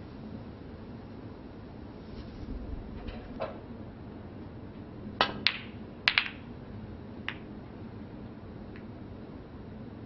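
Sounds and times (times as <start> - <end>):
cue striking ball: 5.2 - 6.4
snooker balls clicking: 5.2 - 6.5, 7.2 - 7.5.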